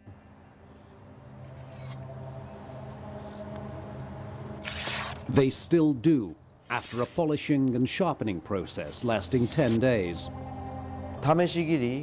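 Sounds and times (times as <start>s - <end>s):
drone of low held tones: 0.0s - 5.3s, 8.3s - 12.0s
sword slicing through paper: 4.6s - 5.3s, 6.7s - 7.3s.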